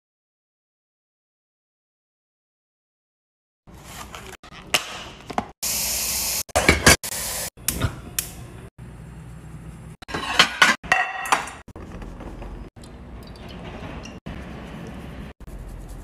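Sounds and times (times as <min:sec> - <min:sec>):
dishes and glassware clinking: 0:10.1 - 0:11.6.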